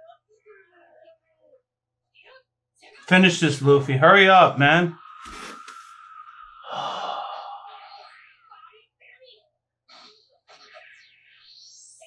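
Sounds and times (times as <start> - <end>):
person sighing: 6.6 - 7.9.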